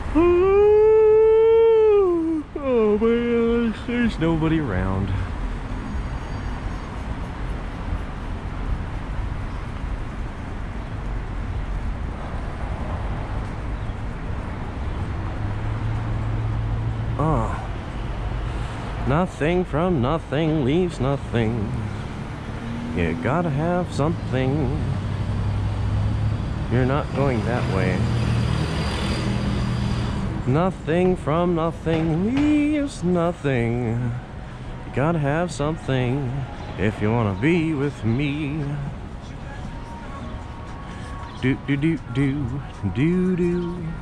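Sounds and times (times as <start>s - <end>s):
road traffic engine hum: 0.0s - 44.0s.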